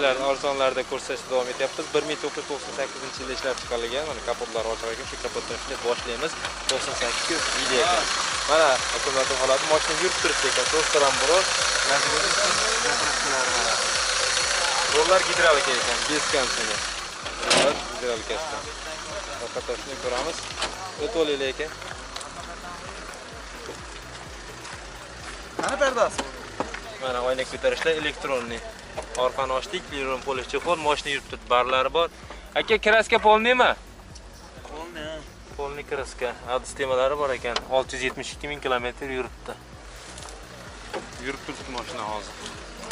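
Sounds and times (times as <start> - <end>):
car engine idling: 0.0 - 42.9
sharp thump: 17.3 - 18.0.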